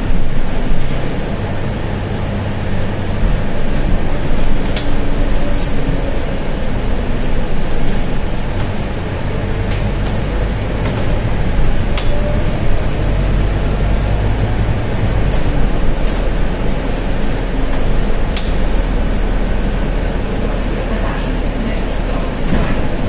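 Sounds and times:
bus engine drone: 0.0 - 23.0
road noise: 0.0 - 23.0.

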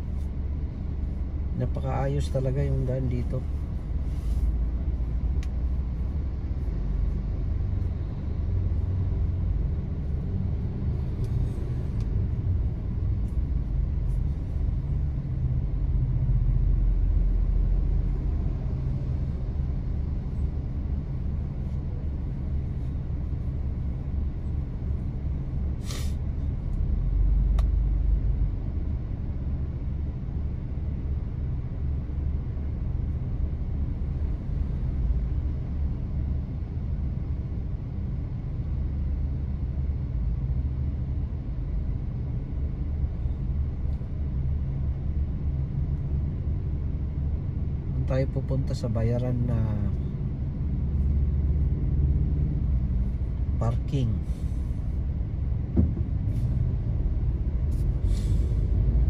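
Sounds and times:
traffic passing: 0.0 - 59.0.

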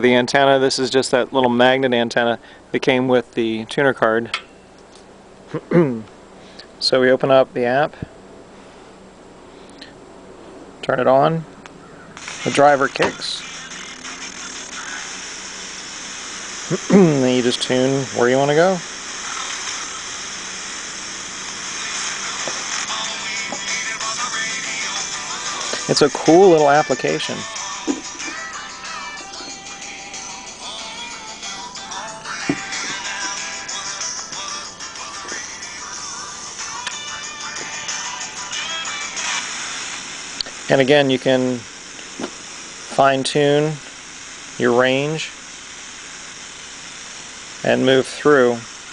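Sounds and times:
radio static hiss: 10.8 - 48.9.

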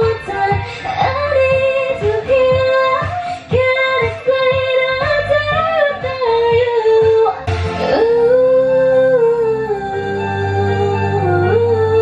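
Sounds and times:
karaoke backing track: 0.0 - 12.0
woman singing into microphone: 0.0 - 12.0.

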